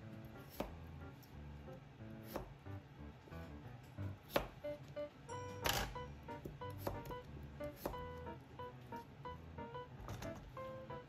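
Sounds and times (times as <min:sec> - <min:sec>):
soft background music: 0:00.0 - 0:11.0
knife chopping on cutting board: 0:00.4 - 0:00.8, 0:02.2 - 0:02.6, 0:04.2 - 0:04.6, 0:06.3 - 0:08.2.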